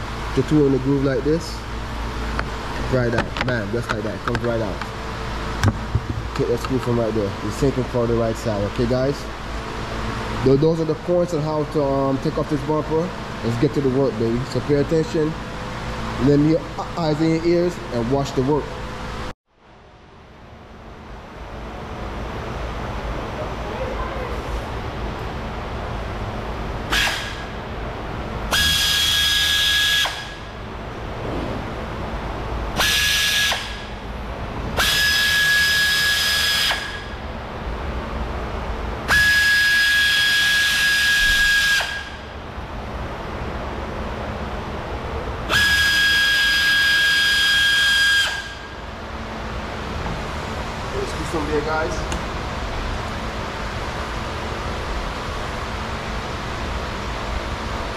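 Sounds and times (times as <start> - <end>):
pneumatic tool whining: 26.9 - 27.6, 32.8 - 33.9, 34.8 - 37.1.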